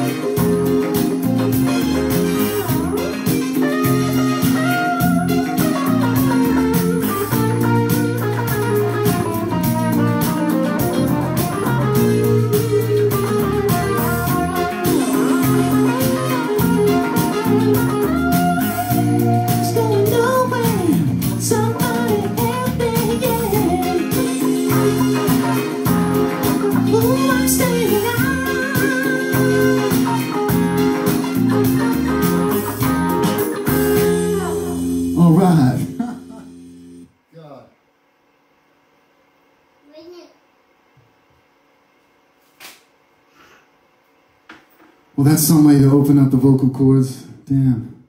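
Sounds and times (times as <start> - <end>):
jazz-funk band playing: 0.0 - 37.0
lead melody with bent notes: 0.0 - 37.1.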